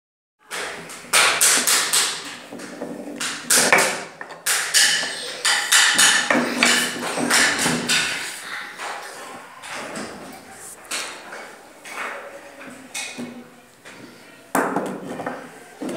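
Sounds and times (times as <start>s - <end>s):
wooden cylinders tapping on wood: 0.5s - 9.0s.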